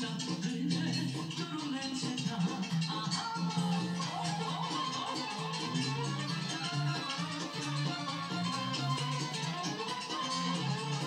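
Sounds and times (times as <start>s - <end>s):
folk dance music with violins: 0.0s - 11.0s.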